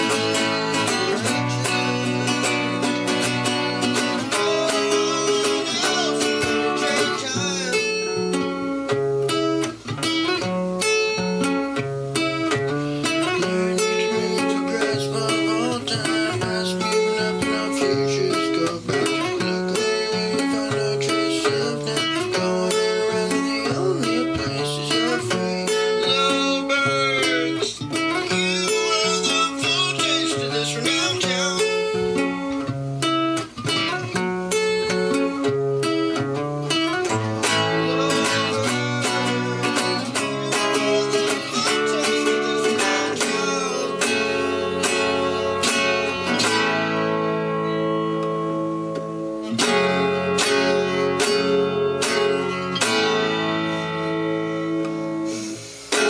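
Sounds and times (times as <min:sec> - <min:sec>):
classical guitar playing: 0:00.0 - 0:56.0.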